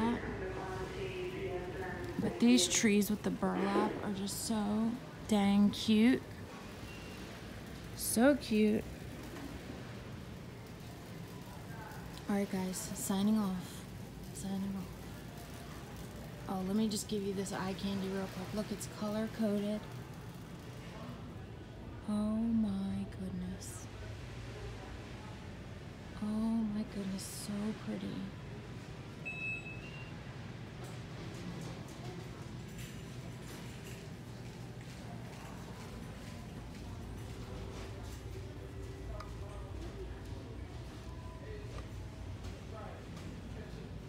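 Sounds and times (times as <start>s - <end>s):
store interior hum and hiss: 0.0s - 44.0s.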